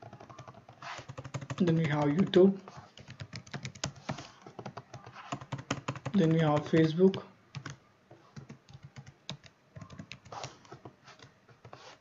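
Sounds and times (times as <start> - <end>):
keyboard typing clicks: 0.0 - 2.4, 3.0 - 7.8, 8.4 - 11.3.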